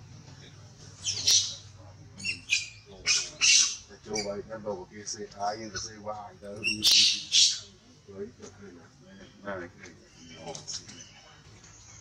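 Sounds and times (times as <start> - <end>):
baby monkey shrill squeals: 1.0 - 1.6, 2.2 - 4.3, 6.6 - 7.7.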